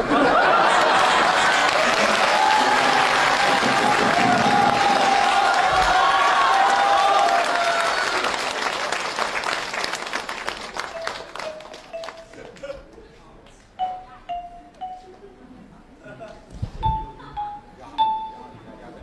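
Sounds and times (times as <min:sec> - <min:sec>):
studio audience applauding: 0:00.3 - 0:12.7.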